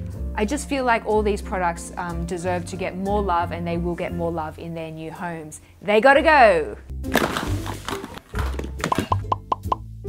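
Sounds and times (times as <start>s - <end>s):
rising pop sound effects: 7.0s - 9.9s.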